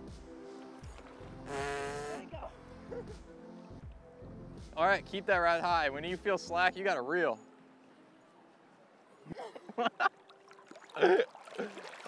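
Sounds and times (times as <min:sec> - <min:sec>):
water sloshing: 0:10.1 - 0:12.0.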